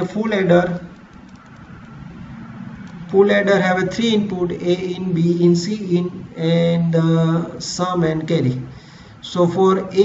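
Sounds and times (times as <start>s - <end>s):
computer keyboard typing: 0.2s - 2.0s.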